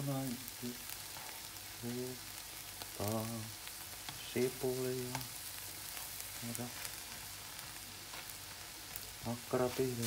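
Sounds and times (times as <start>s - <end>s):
food sizzling in a frying pan: 0.0s - 10.0s.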